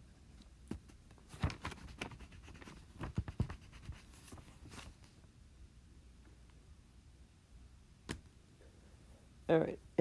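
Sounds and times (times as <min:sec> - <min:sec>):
pen scratching on paper: 0:01.7 - 0:04.3.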